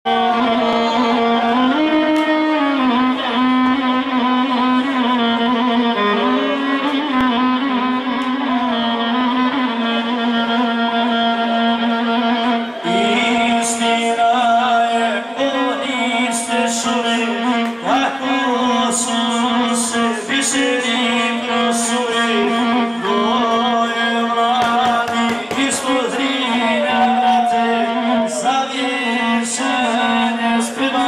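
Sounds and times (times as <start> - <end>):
violin playing slow melody: 0.1 - 31.0.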